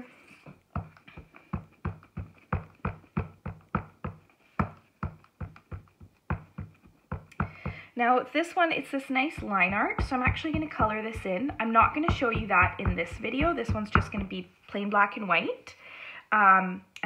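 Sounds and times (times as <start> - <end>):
rubber stamp tapping ink pad: 0.7 - 7.8, 9.4 - 14.4.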